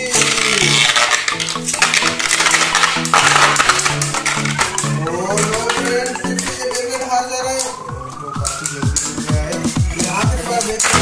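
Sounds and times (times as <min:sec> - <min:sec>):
spinning tops whirring and clattering: 0:00.0 - 0:06.1
background music with bass line: 0:00.0 - 0:11.0.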